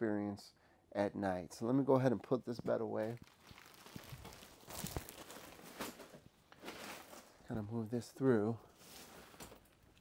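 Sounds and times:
plastic wrapping rustling: 3.0s - 7.4s, 8.7s - 10.0s.

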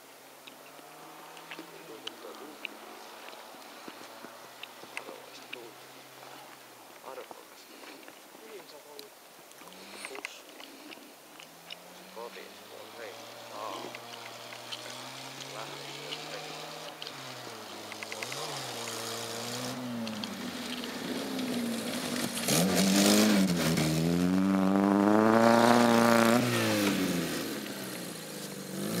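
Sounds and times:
car engine revving: 0.6s - 7.3s, 11.4s - 29.0s.

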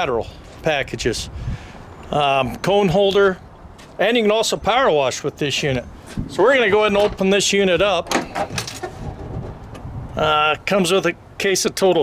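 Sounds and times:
handling noise: 5.5s - 9.9s
metallic rattle: 8.0s - 9.8s.

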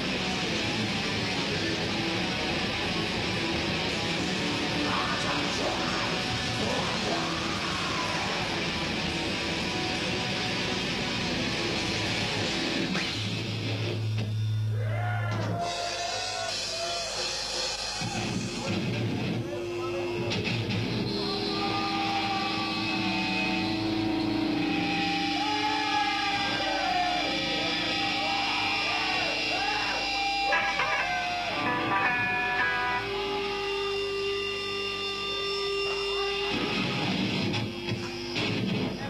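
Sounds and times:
metal band ringing held notes: 30.5s - 33.2s.

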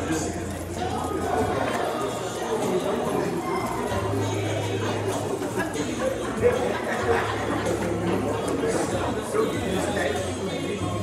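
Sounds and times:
murmur of overlapping voices: 0.0s - 11.0s.

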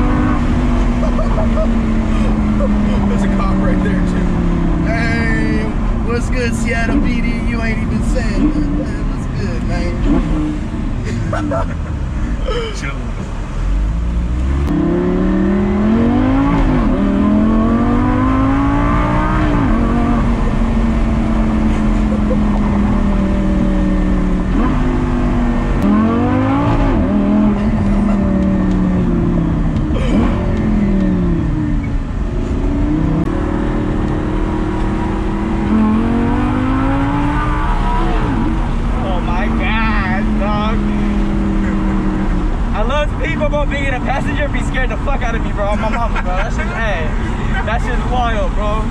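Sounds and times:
car engine accelerating: 0.0s - 48.9s.

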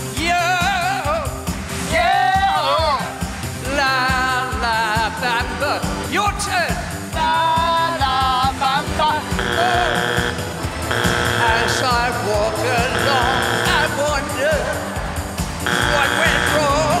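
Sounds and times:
man singing: 0.0s - 10.3s, 10.9s - 14.9s, 15.7s - 17.0s
electronic keyboard backing track: 2.4s - 17.0s
harsh buzzer: 9.1s - 14.2s, 15.6s - 17.0s.

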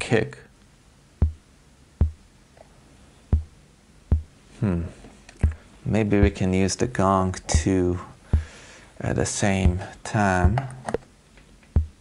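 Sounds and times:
synthesized kick drum hits: 1.2s - 1.4s, 2.0s - 2.3s, 3.3s - 4.4s, 6.2s - 6.5s, 7.5s - 8.6s, 9.6s - 9.8s, 10.4s - 10.7s, 11.8s - 12.0s.

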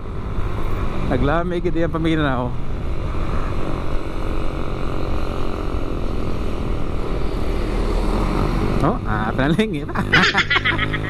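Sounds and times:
motorcycle engine drone: 0.0s - 11.0s.

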